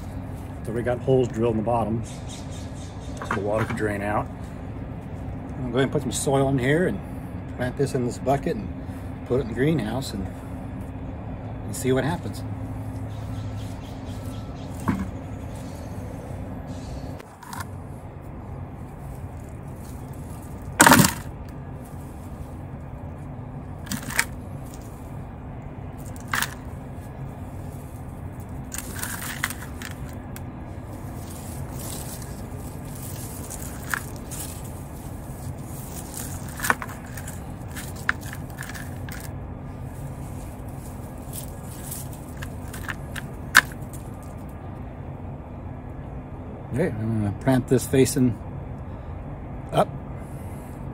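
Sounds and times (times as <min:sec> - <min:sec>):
cracks and scrapes of stalks and soil: 0:00.0 - 0:01.8, 0:03.1 - 0:06.4, 0:11.8 - 0:44.8
steady low hum: 0:00.0 - 0:50.9.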